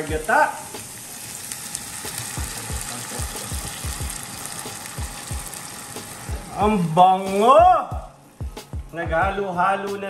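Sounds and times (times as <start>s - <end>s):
food sizzling in a pan: 0.0s - 8.8s
coconut milk pouring into pan: 0.6s - 6.6s.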